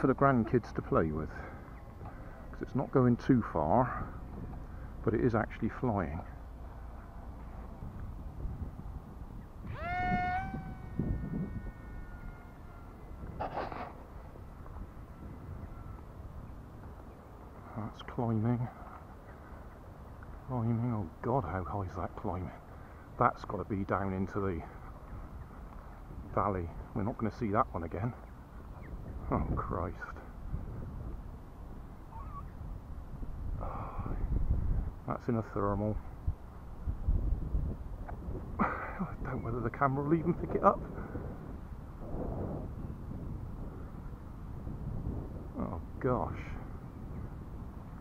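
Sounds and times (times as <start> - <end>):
wind rumble on microphone: 0.0 - 48.0.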